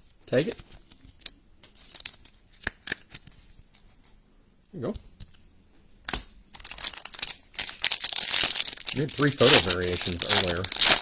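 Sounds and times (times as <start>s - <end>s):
plastic card sleeve crinkling: 0.4s - 3.5s, 6.5s - 11.0s.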